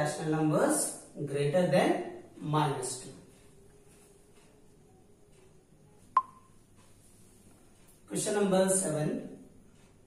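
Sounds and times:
faint room hum: 0.0s - 10.0s
short electronic beep: 6.2s - 6.5s.

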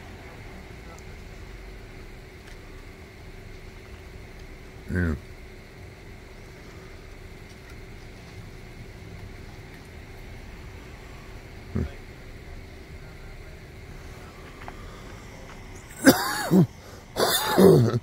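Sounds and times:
low background hum: 0.0s - 18.0s
person grunting: 15.9s - 18.0s.

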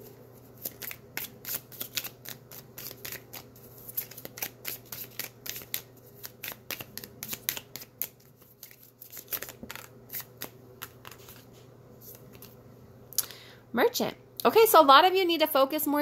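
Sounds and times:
cards being shuffled: 0.4s - 12.6s.

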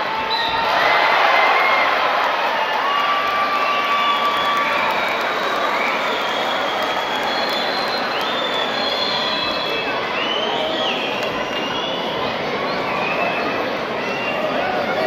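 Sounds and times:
crowd cheering and clapping: 0.0s - 13.1s.

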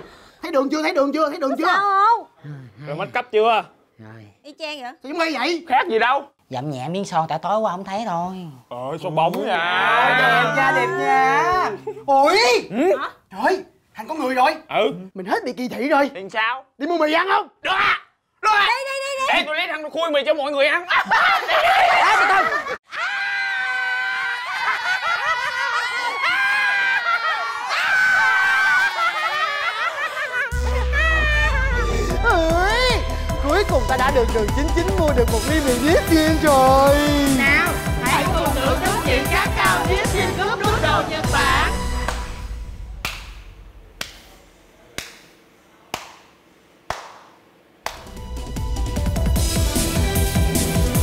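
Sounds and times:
people shouting and squealing: 21.0s - 33.0s, 36.8s - 41.8s
music: 30.5s - 43.0s, 47.9s - 51.0s.

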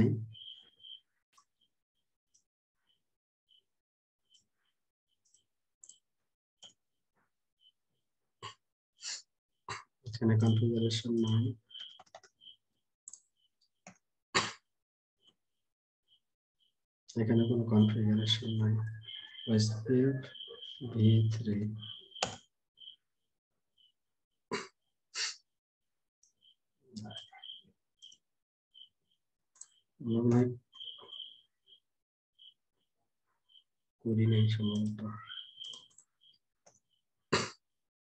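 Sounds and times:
keyboard typing clicks: 11.2s - 13.2s, 22.1s - 22.5s.

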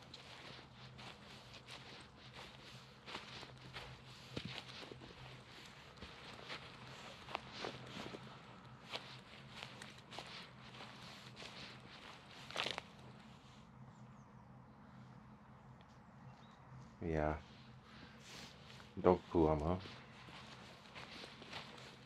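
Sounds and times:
footsteps on dry leaves: 0.0s - 13.5s, 17.4s - 22.0s
faint low hum: 0.0s - 22.0s.

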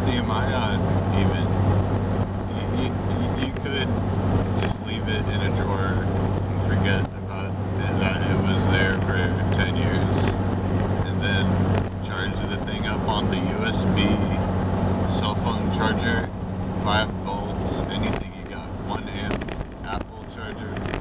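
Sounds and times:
man talking: 0.0s - 1.5s, 2.5s - 3.9s, 4.6s - 10.4s, 11.0s - 14.5s, 15.1s - 20.9s
car engine and road drone: 0.0s - 21.0s.

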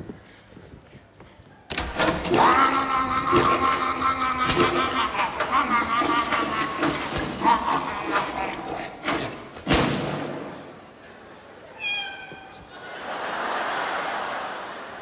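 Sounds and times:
clown's wordless vocal sounds: 1.8s - 9.6s
audience laughing: 2.0s - 9.5s, 12.6s - 15.0s
high pitched cry: 2.3s - 9.0s, 11.6s - 12.6s.

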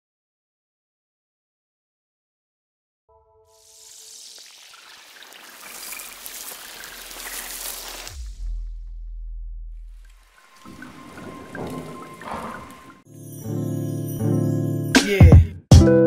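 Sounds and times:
hissing swell: 3.5s - 8.2s
deep bass boom: 8.2s - 10.2s.

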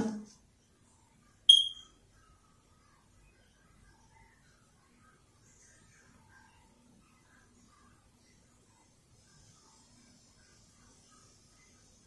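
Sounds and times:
high-pitched electronic beep: 1.5s - 1.9s.

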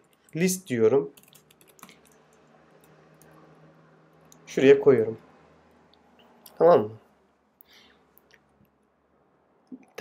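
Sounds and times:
keyboard typing clicks: 1.2s - 3.4s.

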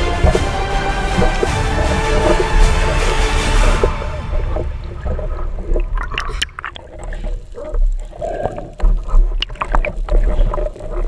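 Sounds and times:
underwater rushing water: 0.0s - 11.0s.

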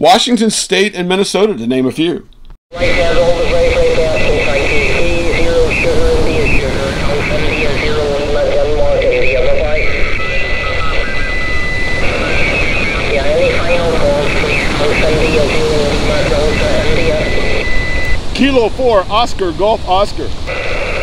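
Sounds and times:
steady radio whistle: 2.7s - 18.2s, 20.5s - 21.0s
garbled radio speech: 2.7s - 21.0s
radio hiss: 2.7s - 21.0s.

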